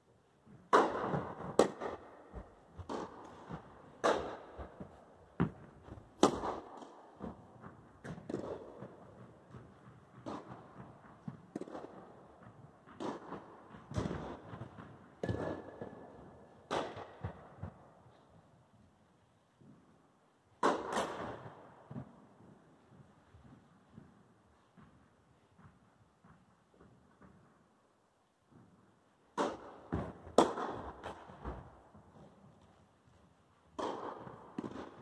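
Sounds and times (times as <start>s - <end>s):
tennis ball bouncing: 0.5s - 18.0s, 20.6s - 22.3s, 29.3s - 32.4s, 33.7s - 35.0s
tennis ball hit by rackets: 0.7s - 17.9s, 20.6s - 22.2s, 29.3s - 31.8s, 33.7s - 35.0s.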